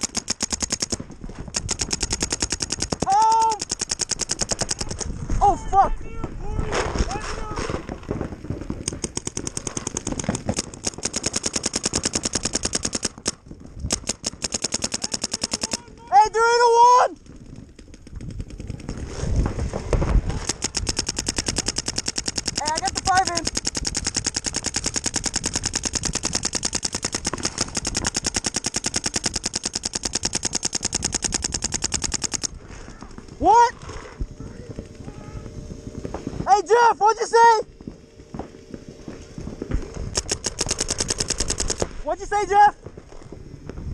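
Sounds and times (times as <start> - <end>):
paintball markers firing rapidly: 0.0 - 5.2, 7.0 - 36.7, 37.8 - 43.2
people shouting: 3.0 - 3.7, 15.0 - 17.2.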